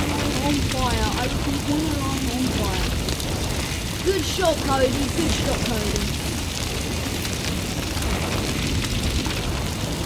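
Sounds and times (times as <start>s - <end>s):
fire burning: 0.0s - 10.0s
small crackles: 0.0s - 10.0s.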